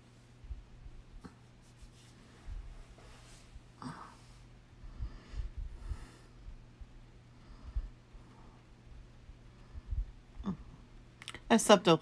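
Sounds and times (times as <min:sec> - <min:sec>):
light rubbing on phone: 0:01.3 - 0:03.6.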